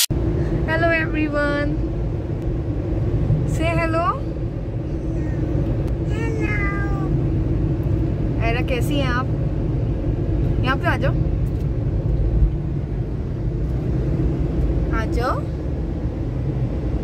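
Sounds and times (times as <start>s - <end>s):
car cabin rumble: 0.2s - 17.0s
young child calling: 4.9s - 7.2s.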